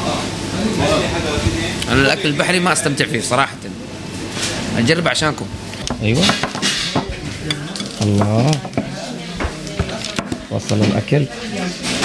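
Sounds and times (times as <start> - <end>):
dishes clinking on a table: 5.9 - 10.4.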